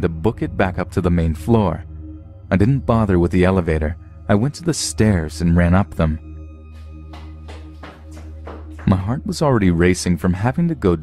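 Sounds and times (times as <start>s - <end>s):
dark ambient music drone: 0.0s - 11.0s
quick footsteps climbing stairs: 7.1s - 9.0s.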